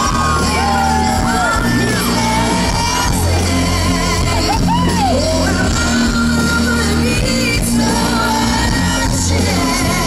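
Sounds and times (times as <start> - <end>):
live band playing: 0.0 - 10.0
woman singing into a microphone: 0.0 - 10.0.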